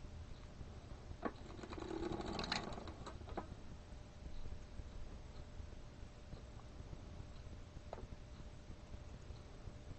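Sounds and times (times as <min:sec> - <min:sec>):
sock machine clicking and rattling: 0:01.2 - 0:03.5.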